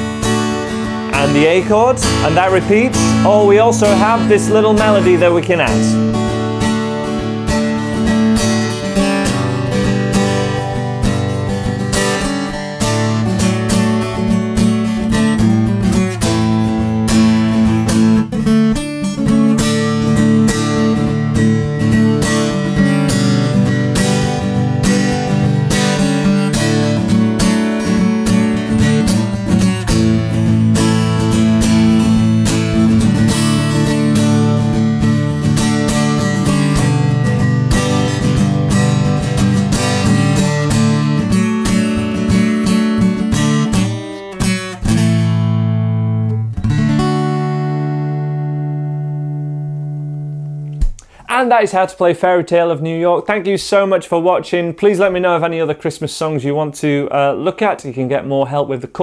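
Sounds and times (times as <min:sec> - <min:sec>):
acoustic guitar playing chords: 0:00.0 - 0:51.8.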